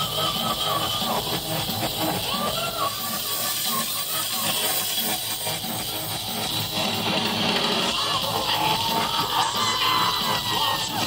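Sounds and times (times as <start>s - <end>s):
heavy metal band playing live: 0.0s - 11.0s.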